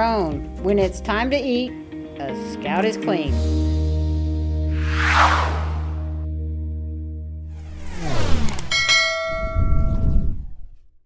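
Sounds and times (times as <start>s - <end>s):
falling whooshing sweeps: 4.7s - 6.2s, 7.5s - 8.9s
low rumble: 4.8s - 6.3s.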